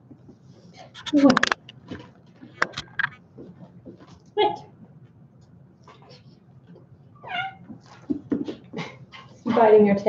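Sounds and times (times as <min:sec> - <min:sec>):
kitten meowing: 0:07.2 - 0:07.6
knocks and scuffles: 0:07.6 - 0:08.9.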